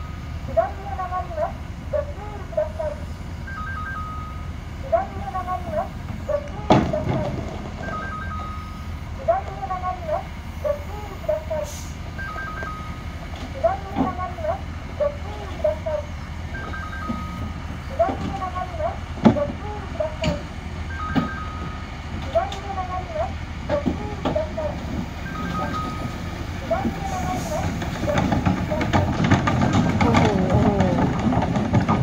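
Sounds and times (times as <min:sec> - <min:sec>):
diesel engine running: 0:00.0 - 0:32.0.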